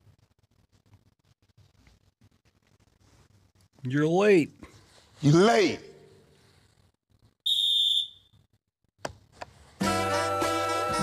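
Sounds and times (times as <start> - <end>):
referee's whistle blast: 7.5 - 8.4.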